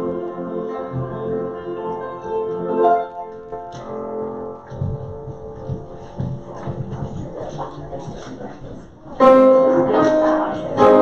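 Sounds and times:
church keyboard chords: 0:00.0 - 0:07.8, 0:08.9 - 0:11.0
low thuds: 0:03.7 - 0:09.0.

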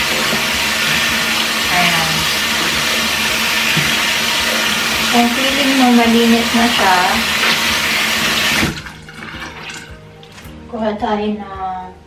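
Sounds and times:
faucet running into sink: 0:00.0 - 0:10.5.

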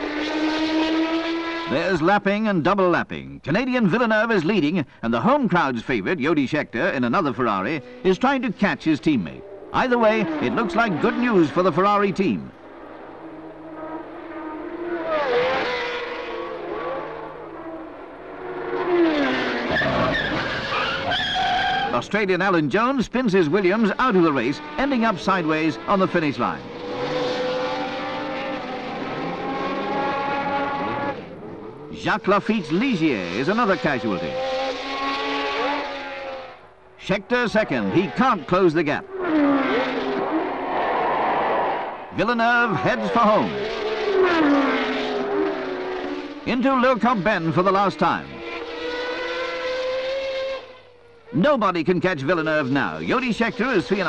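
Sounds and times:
race cars passing at speed: 0:00.0 - 0:02.3, 0:06.8 - 0:21.9, 0:23.3 - 0:54.0
tyre squeal: 0:19.2 - 0:22.0.

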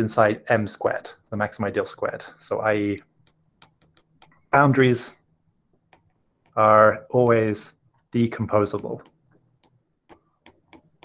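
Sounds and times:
stylus tapping on glass screen: 0:03.0 - 0:04.6, 0:05.2 - 0:06.6, 0:07.8 - 0:11.0.

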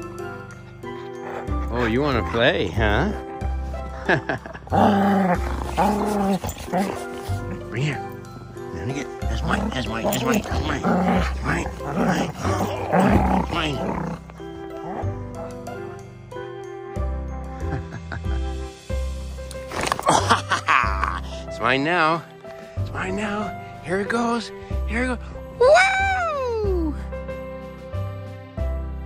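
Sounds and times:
background music with chords and bass: 0:00.0 - 0:29.0
dog growling: 0:00.2 - 0:03.4, 0:04.0 - 0:15.5
man's voice: 0:08.7 - 0:14.1.

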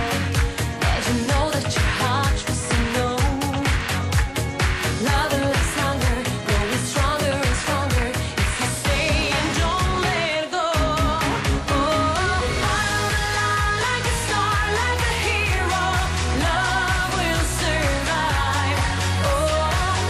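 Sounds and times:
woman singing into a microphone: 0:00.0 - 0:04.2, 0:04.9 - 0:20.0
backing track with beat and bass: 0:00.0 - 0:20.0.

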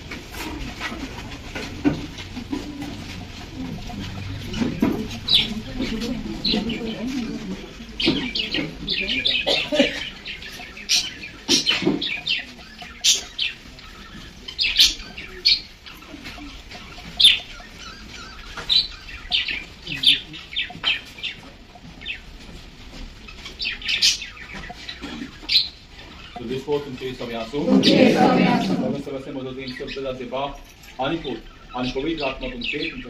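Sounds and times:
small birds chirping: 0:00.0 - 0:33.0.

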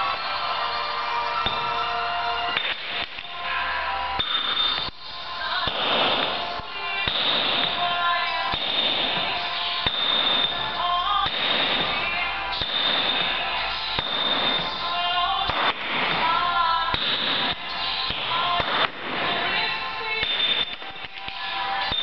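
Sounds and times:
background music: 0:00.0 - 0:22.0
hammer striking chisel into stone: 0:09.8 - 0:10.5, 0:20.2 - 0:20.8.

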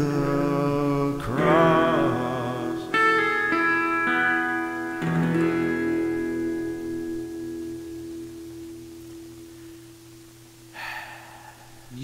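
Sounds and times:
acoustic guitar chord ringing: 0:00.0 - 0:11.3.

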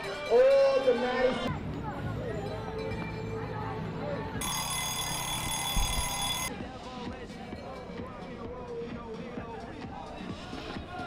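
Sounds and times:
high-pitched ringing alarm tone: 0:04.4 - 0:06.5.

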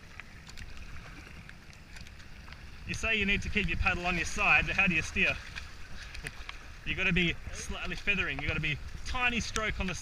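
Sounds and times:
kayak paddle splashing water: 0:00.0 - 0:10.0.

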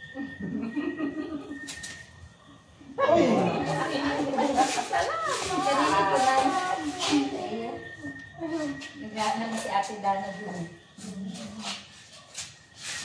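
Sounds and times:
overlapping chatter of voices: 0:03.0 - 0:11.9.

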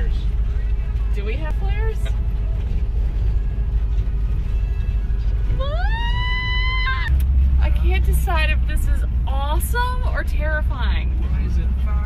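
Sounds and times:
van engine and road rumble: 0:00.0 - 0:12.0.

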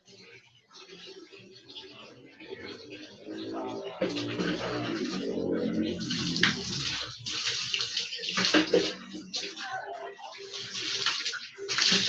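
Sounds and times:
water pouring over person: 0:04.1 - 0:12.0
water splashing on floor: 0:05.9 - 0:09.6, 0:10.4 - 0:12.0.

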